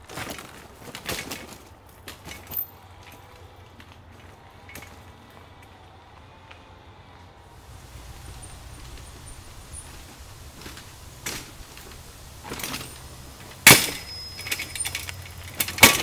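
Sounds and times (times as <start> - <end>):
bike frame clattering: 7.6 - 16.0
tyres knocking over rock: 9.7 - 16.0.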